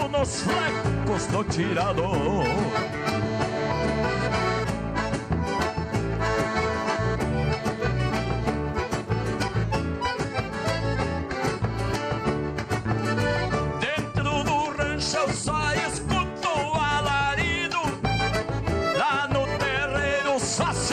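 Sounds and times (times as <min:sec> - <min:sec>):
button accordion playing: 0:00.0 - 0:20.9
guitar: 0:00.0 - 0:20.9.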